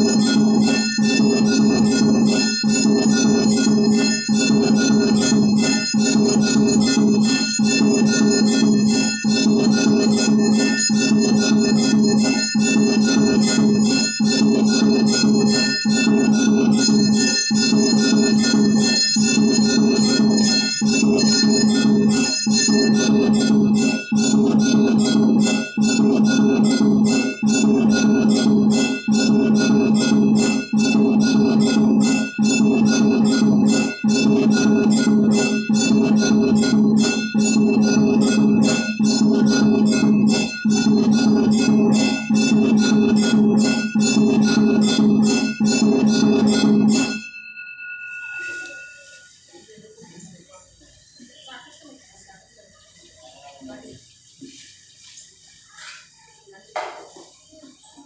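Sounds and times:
drumming: 0.0 - 47.3
temple bell ringing: 0.0 - 49.4.

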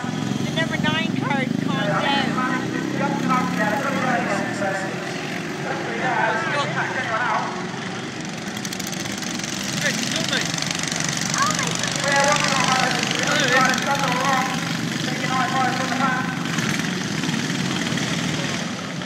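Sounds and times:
people's voices: 0.0 - 8.8, 9.5 - 19.0
lawn mower engines running: 0.0 - 19.0.

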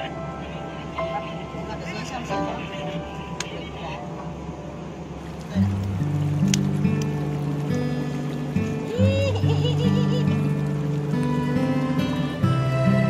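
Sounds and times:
slow background music with bass: 5.7 - 13.0.

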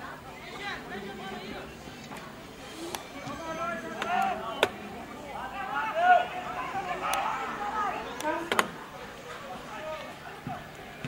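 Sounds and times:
people shouting: 2.5 - 10.0.

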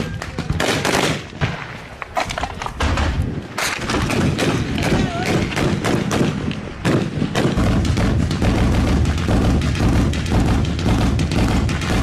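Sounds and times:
rapid small arms gunfire: 0.1 - 1.6, 2.8 - 12.0.

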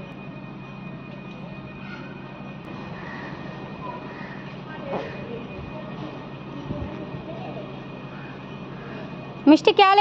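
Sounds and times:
steady low hum: 0.0 - 10.0
faint indistinct voices: 1.2 - 9.5.

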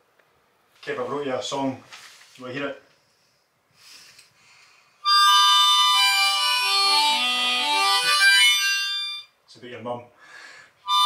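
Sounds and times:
faint rustle: 1.8 - 3.4
harmonica playing chords: 5.0 - 9.4.

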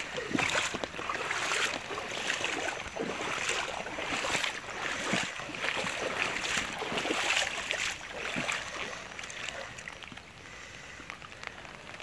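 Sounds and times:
water sloshing from wading: 0.0 - 12.0.

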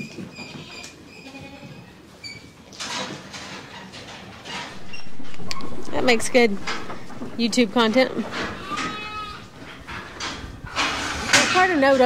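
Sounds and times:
goat bleating: 0.4 - 1.8, 8.1 - 10.4.

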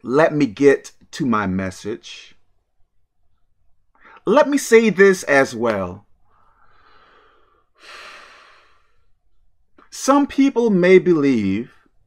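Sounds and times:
man breathing in: 6.2 - 9.3
man exhaling: 6.4 - 9.1.

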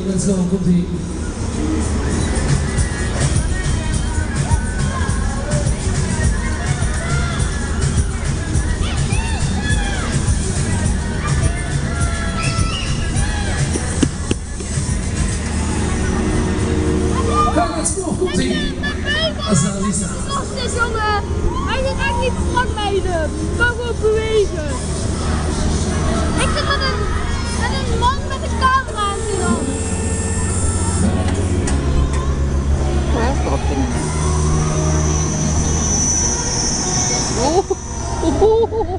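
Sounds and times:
ride rumbling: 0.0 - 38.9
fairground music: 1.0 - 38.9
held pitched tone: 28.0 - 31.6.

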